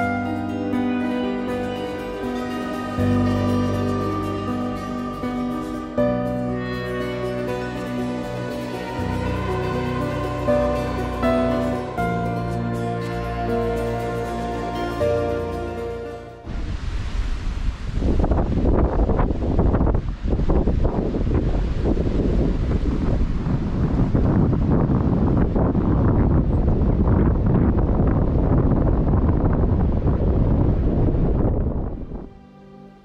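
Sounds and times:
wind buffeting microphone: 16.5s - 32.4s.

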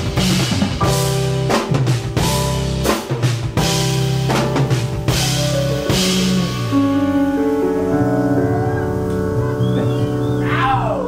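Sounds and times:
drum hits: 0.0s - 6.8s
electric bass: 0.0s - 11.0s
keyboard chords: 0.0s - 11.0s.

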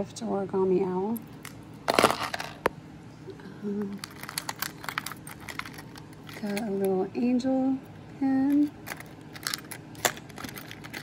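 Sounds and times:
jewelry clinking: 3.9s - 7.0s, 8.4s - 11.0s.

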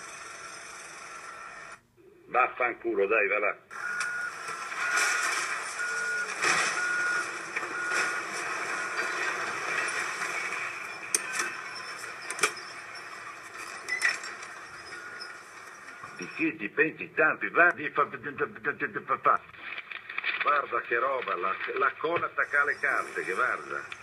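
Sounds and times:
backup alarm beeping: 3.7s - 16.6s.

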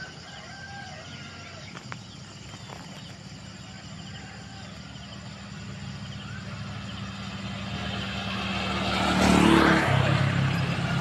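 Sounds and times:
rooster crowing: 0.0s - 1.7s, 3.6s - 5.2s.

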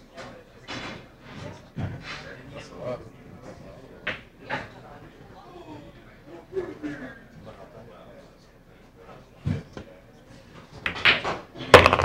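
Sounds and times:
billiard balls clicking: 10.8s - 12.0s
pool cue striking ball: 10.8s - 12.0s.

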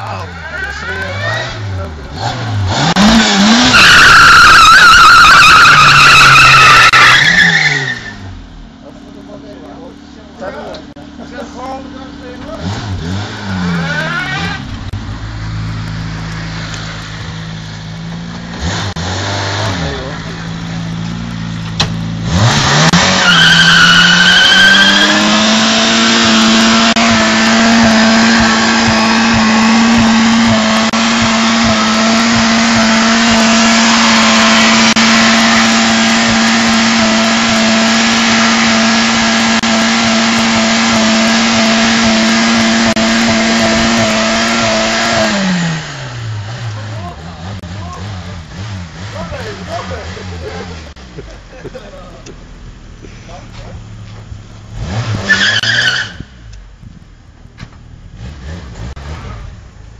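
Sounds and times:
car engine revving: 0.0s - 59.9s
high squeal: 23.1s - 25.2s.

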